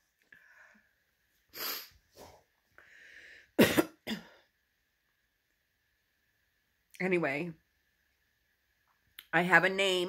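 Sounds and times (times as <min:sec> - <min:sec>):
woman crying and sniffing: 0:01.5 - 0:02.3.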